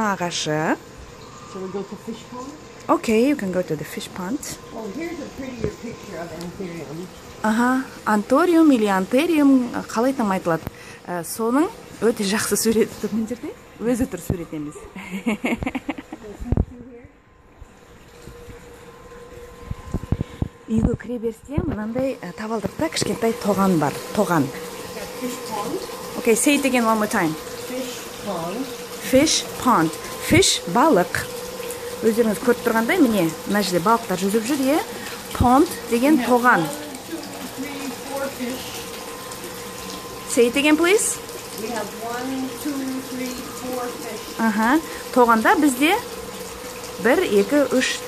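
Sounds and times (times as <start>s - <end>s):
running water in a pond: 0.0s - 17.0s, 17.6s - 48.0s
faint hum: 0.0s - 48.0s.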